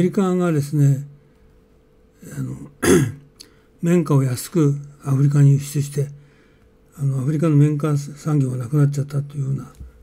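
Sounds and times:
man clearing his throat: 2.8 - 3.2.

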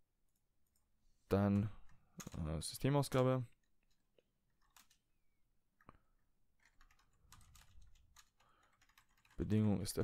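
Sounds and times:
faint keyboard keystrokes: 3.6 - 5.0, 6.6 - 9.4.

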